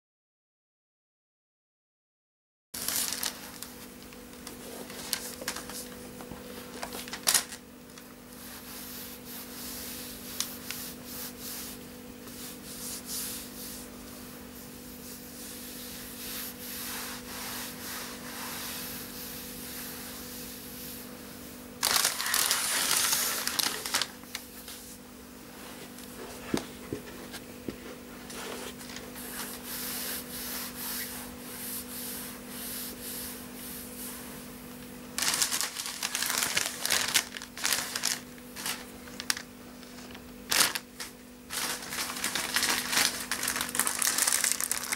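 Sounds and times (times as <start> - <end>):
faint steady hum: 2.8 - 44.9
gloves rubbing over fabric: 8.3 - 24.0, 24.6 - 34.6, 35.2 - 44.9.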